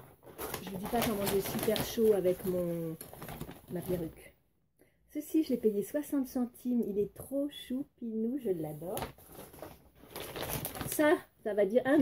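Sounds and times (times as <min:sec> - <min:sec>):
plastic snack pouch crinkling: 0:00.4 - 0:04.1, 0:09.0 - 0:11.1.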